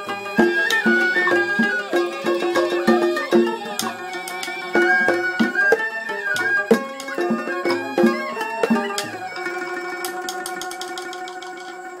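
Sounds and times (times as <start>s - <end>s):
rapid repeated plucked strokes: 0.0s - 12.0s
traditional instrumental music: 0.0s - 12.0s.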